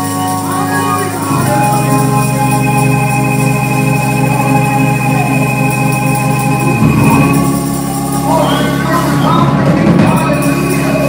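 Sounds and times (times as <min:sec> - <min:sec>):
sustained organ chords on keyboard: 0:00.0 - 0:11.0.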